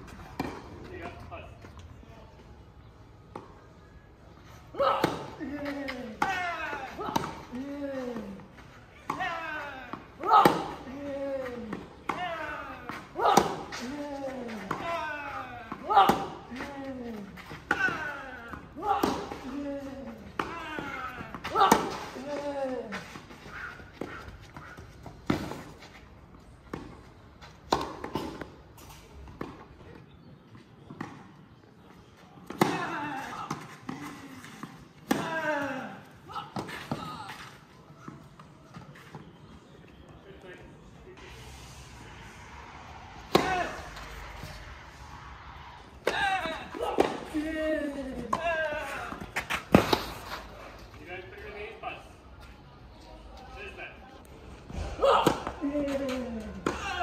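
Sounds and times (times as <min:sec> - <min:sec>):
racket striking tennis ball: 0:10.2 - 0:10.8, 0:43.2 - 0:43.9, 0:46.0 - 0:47.4.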